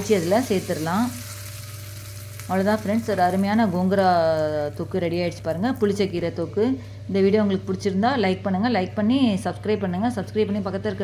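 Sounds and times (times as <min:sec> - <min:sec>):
hot oil sizzling: 0:00.0 - 0:07.1.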